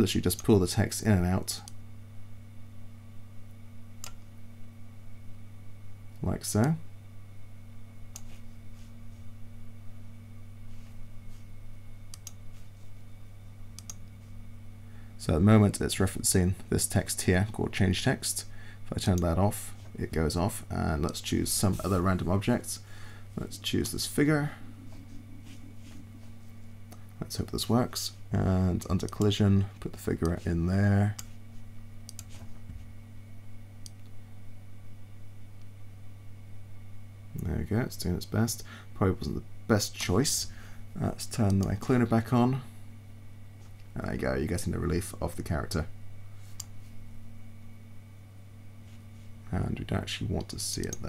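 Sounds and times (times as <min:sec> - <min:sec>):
steady low hum: 0:00.0 - 0:51.0
computer mouse clicks: 0:04.0 - 0:04.2, 0:12.1 - 0:12.4, 0:13.8 - 0:14.2, 0:32.1 - 0:32.5.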